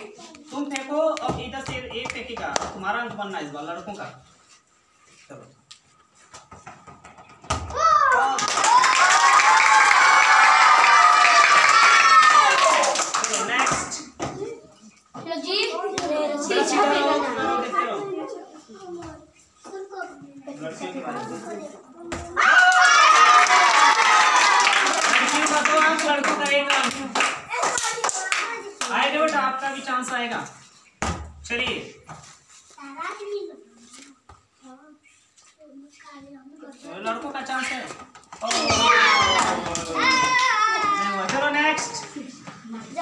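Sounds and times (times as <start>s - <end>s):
children clapping hands: 8.1s - 14.0s, 22.6s - 29.4s
children calling: 38.4s - 41.3s.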